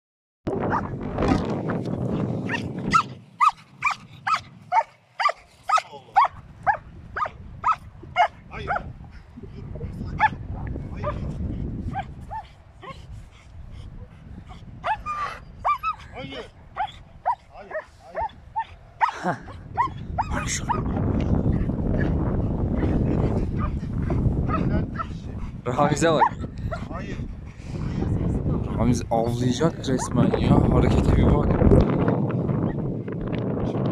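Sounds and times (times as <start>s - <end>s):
dog barking: 2.5s - 8.9s, 14.8s - 16.0s, 16.8s - 19.2s.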